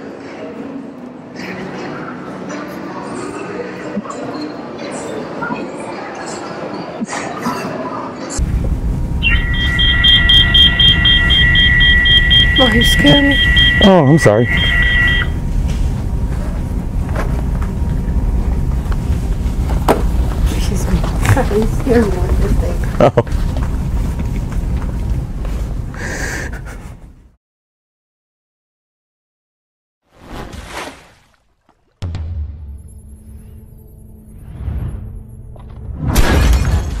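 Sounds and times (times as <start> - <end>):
store background rumble: 8.4 - 27.3
electronic whine with fast beeps: 9.1 - 15.4
loud crashing shattering effect: 36.0 - 37.0.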